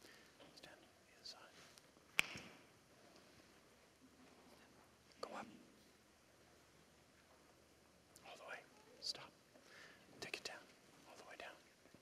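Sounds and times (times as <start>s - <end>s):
faint whispered voices: 0.4s - 1.7s, 4.1s - 5.8s, 8.2s - 9.5s, 10.1s - 12.0s
soft sharp clicks: 1.8s - 2.6s.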